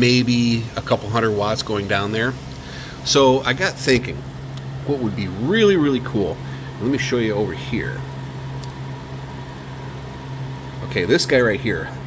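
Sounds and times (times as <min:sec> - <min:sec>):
faint hiss: 0:00.0 - 0:08.0
machine hum: 0:00.0 - 0:12.0.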